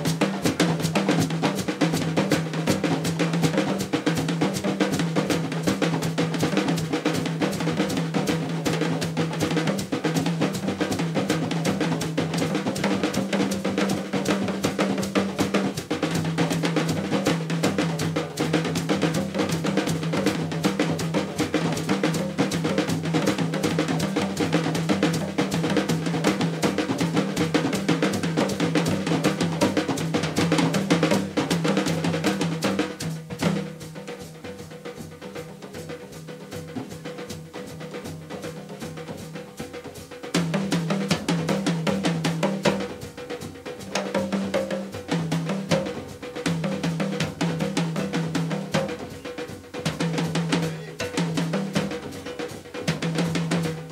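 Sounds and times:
fast drum kit playing: 0.0s - 53.9s.

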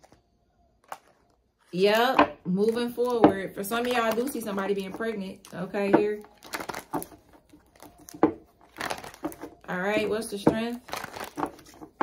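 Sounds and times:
cards rustling: 0.8s - 10.2s, 10.8s - 12.0s.

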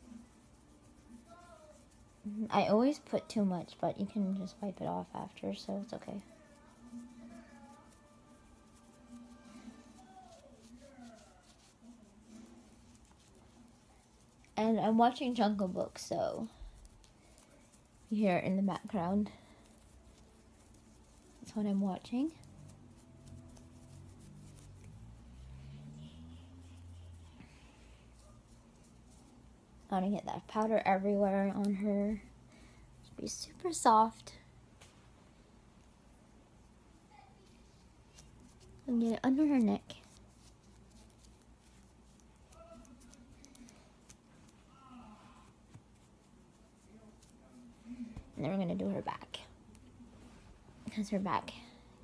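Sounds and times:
hands rustling and ticking: 0.0s - 32.2s
muffled television voices: 0.0s - 32.4s, 36.9s - 52.0s.

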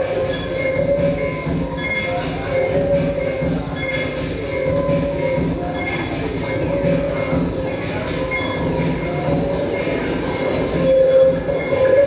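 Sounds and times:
noisy electronic drone: 0.0s - 12.0s
sustained high tones: 0.0s - 12.0s.

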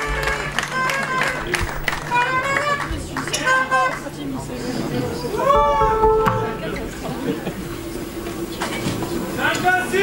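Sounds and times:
audience voices calling out: 0.0s - 10.0s
high wavering whoops: 5.3s - 6.5s.

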